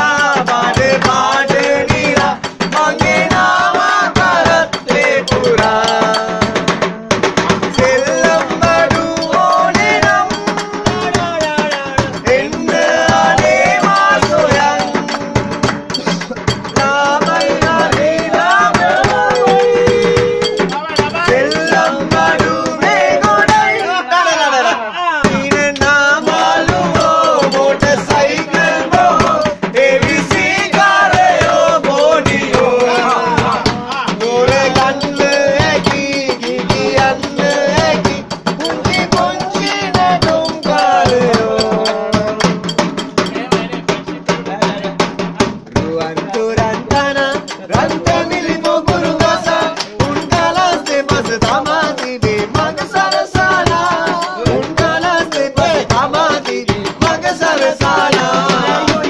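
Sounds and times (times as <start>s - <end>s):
hand drum quick beat: 0.0s - 24.0s, 25.2s - 59.0s
voices singing: 0.0s - 59.0s.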